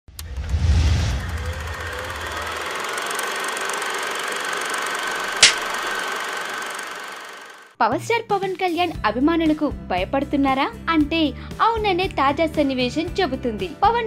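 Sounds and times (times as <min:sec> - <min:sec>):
hissing whir: 0:00.2 - 0:07.7
sharp click: 0:05.4 - 0:05.8.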